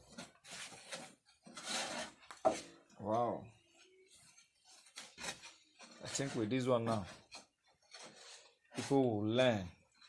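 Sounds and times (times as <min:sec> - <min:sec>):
gritty stirring in frying pan: 0:00.0 - 0:02.9.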